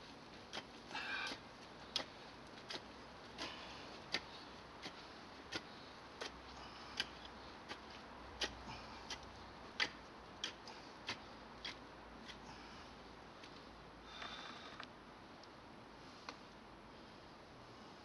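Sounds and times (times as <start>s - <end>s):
hand hoe striking soil: 0.0s - 12.4s.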